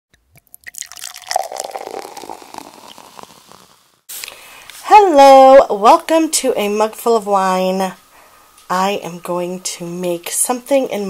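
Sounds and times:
liquid pouring and dripping: 0.2s - 3.6s.

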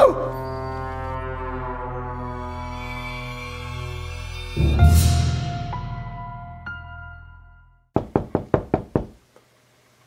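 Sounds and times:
knocking on wooden door: 8.0s - 9.2s.

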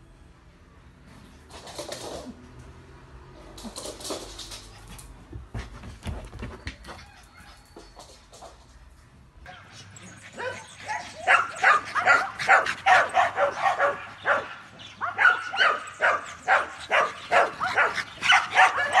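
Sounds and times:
dog barking: 10.3s - 19.0s.

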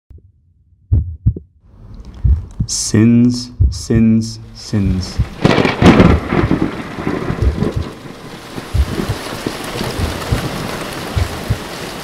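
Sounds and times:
heartbeat thumps: 0.1s - 4.2s, 4.8s - 8.0s, 8.7s - 11.7s.

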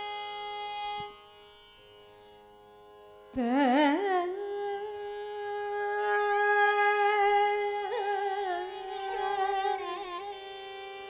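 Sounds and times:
violin holding a long note: 0.0s - 1.3s, 4.9s - 11.0s.

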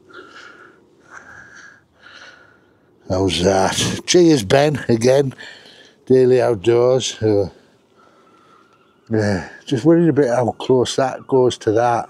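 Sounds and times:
short breaths close to microphone: 0.1s - 2.8s.

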